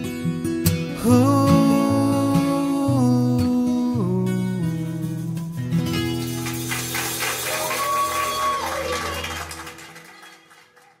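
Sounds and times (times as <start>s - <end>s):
audience applause: 6.3s - 11.0s
audience cheering: 6.6s - 11.0s.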